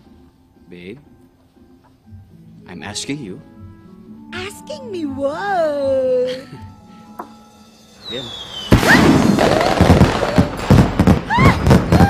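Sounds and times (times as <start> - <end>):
fireworks whistling: 7.7 - 12.0
fireworks bursting: 8.0 - 12.0
fireworks crackling and popping: 8.0 - 12.0.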